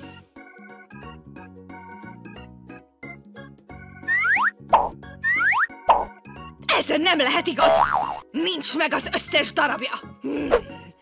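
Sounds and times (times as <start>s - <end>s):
playful children's music: 0.0s - 11.0s.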